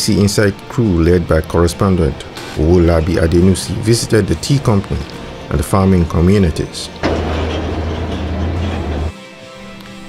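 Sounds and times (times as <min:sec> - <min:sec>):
lorry diesel engine driving: 0:06.9 - 0:09.1
road and body noise: 0:07.0 - 0:09.1.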